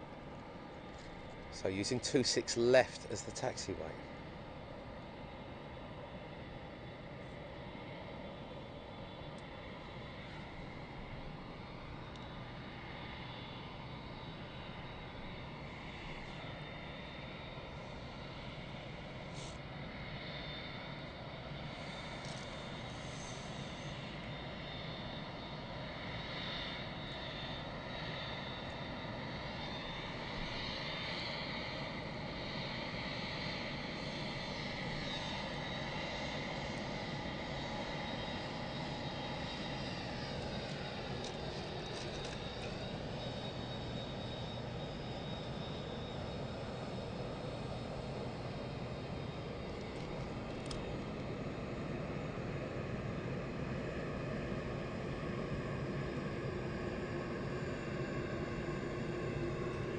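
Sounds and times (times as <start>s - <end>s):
jet engines taxiing: 0.0s - 59.9s.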